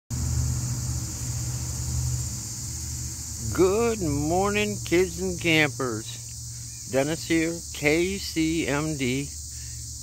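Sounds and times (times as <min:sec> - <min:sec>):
low rumble: 0:00.1 - 0:04.9
insect chorus: 0:00.1 - 0:10.0.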